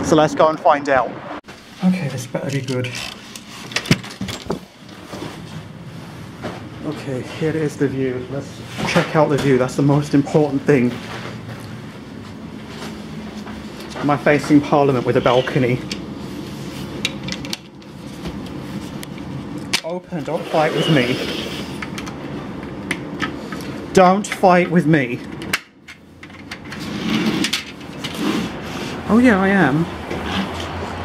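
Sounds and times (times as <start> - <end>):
low hum and rumble: 0.0 - 24.0
outdoor noise: 10.4 - 31.0
sliding door opening: 26.6 - 29.0.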